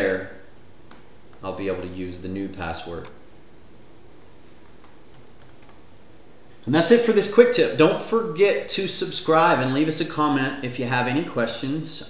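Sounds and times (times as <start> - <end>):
computer keyboard keystrokes: 4.2 - 5.8.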